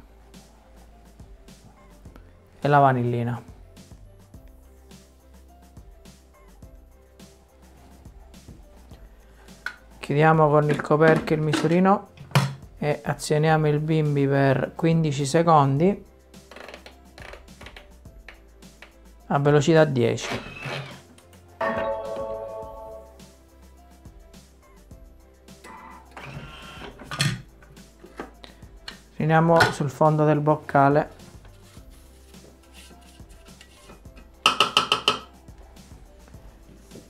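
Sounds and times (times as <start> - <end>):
soft background music: 0.0 - 37.0
spatula tapping metal bowl: 34.4 - 35.3.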